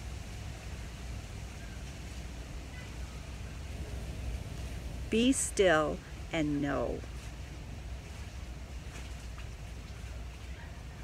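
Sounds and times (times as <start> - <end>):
faint hiss: 0.0 - 10.7
low rumble: 3.3 - 7.8.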